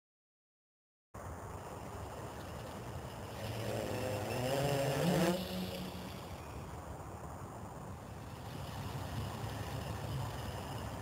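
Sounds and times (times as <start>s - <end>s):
quadcopter motors buzzing whir: 1.2s - 11.0s.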